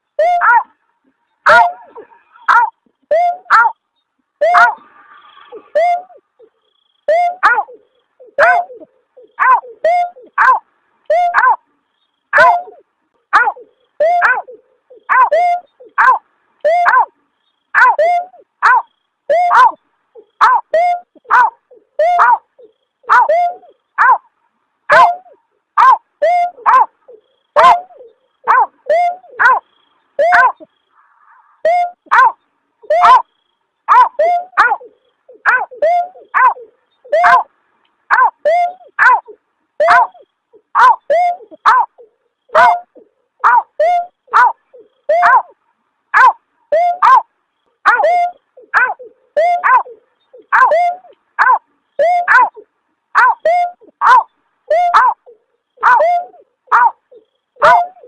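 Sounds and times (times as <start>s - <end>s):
bird call with falling notes: 4.4s - 10.4s, 16.6s - 17.1s, 19.3s - 21.3s, 22.0s - 24.0s, 26.2s - 29.6s, 30.2s - 30.8s, 31.6s - 32.1s, 34.2s - 37.5s, 38.1s - 41.8s, 43.7s - 45.5s, 46.7s - 47.2s, 47.9s - 51.2s, 55.8s - 56.4s.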